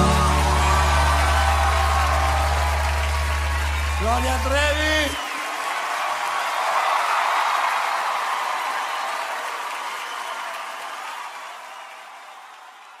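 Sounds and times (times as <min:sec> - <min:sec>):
audience applause: 0:00.0 - 0:13.0.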